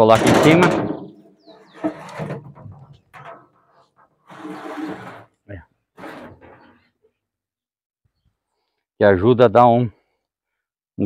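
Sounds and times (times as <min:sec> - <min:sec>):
metal lid scraping on metal: 0:00.1 - 0:05.4, 0:06.0 - 0:06.9.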